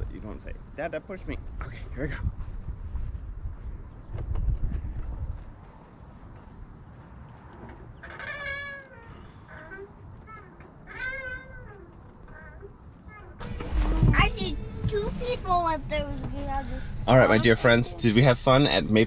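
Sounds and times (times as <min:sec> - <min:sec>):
wind rumble on microphone: 0:00.0 - 0:07.3.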